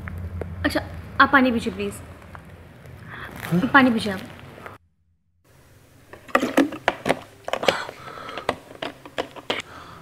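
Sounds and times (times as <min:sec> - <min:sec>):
plastic water bottle crackling: 0:02.2 - 0:04.8, 0:06.1 - 0:09.6.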